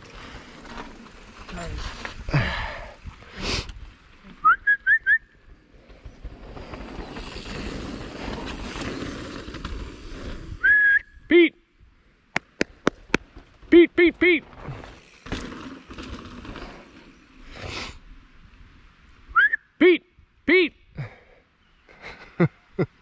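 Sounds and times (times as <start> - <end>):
bike rolling over dirt trail: 0.0 - 4.2, 5.5 - 10.6, 14.4 - 18.0.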